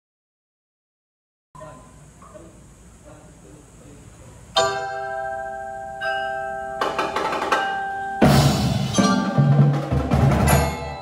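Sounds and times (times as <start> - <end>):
mallet percussion ensemble playing: 4.6 - 11.0.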